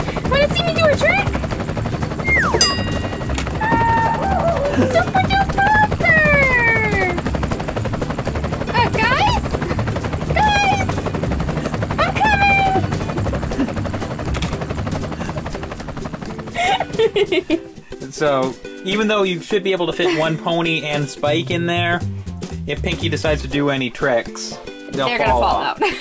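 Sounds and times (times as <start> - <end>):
helicopter rotor chopping: 0.0 - 25.9
person squealing: 3.6 - 5.0.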